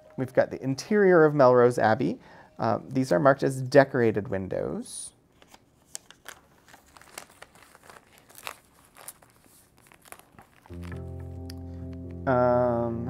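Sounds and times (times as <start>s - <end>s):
background music: 0.0s - 3.6s, 10.7s - 13.0s
paper pages turning: 5.3s - 11.4s.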